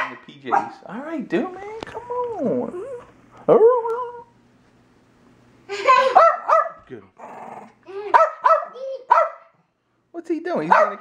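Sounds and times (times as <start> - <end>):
small dog barking: 0.0 - 0.9, 6.1 - 6.8, 8.1 - 9.5, 10.7 - 11.0.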